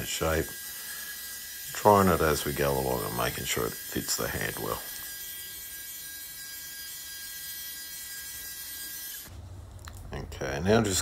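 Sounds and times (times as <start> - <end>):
belt grinder whining: 0.0 - 9.4.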